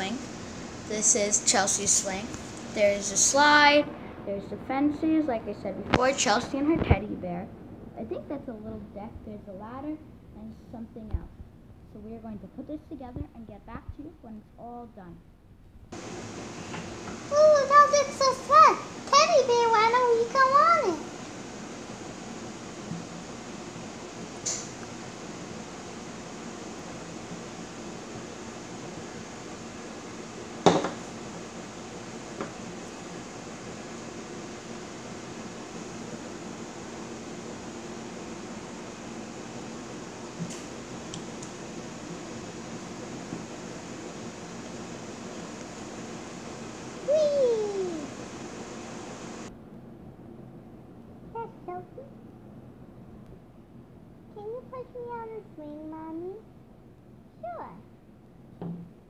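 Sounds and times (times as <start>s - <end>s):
room hiss: 0.0s - 59.0s.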